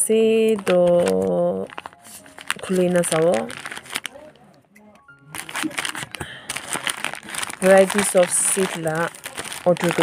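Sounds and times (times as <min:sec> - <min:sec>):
plastic mailer crinkling: 0:00.4 - 0:04.5, 0:05.3 - 0:10.0.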